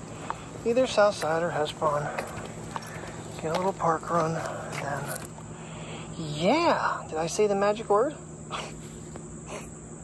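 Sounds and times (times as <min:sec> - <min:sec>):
insect chorus: 0:00.0 - 0:10.0.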